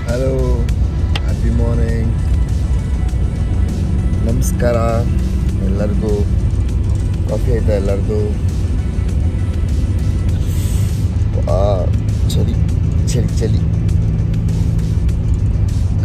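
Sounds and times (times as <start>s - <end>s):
man speaking: 0.0s - 2.2s, 4.2s - 6.3s, 7.3s - 8.4s, 11.4s - 13.7s
background music: 0.0s - 16.0s
bus rumbling on wet road: 0.0s - 16.0s.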